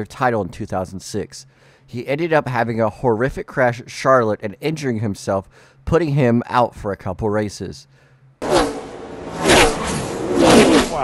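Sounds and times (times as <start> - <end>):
race cars passing at speed: 8.4 - 11.0.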